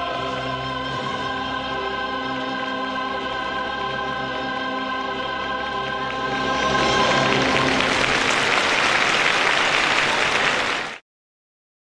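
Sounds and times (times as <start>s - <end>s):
audience applause: 6.1s - 11.0s.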